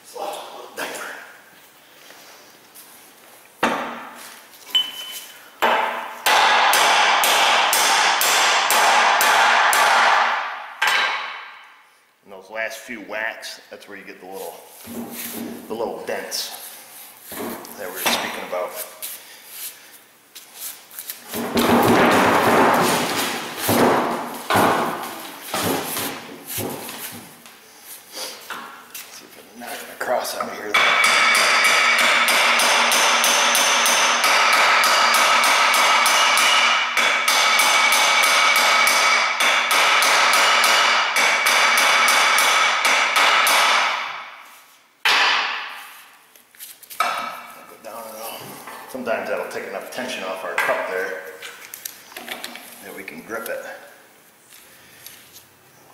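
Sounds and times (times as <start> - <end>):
hammer striking metal: 5.6 - 11.7, 30.7 - 44.4, 45.0 - 45.9.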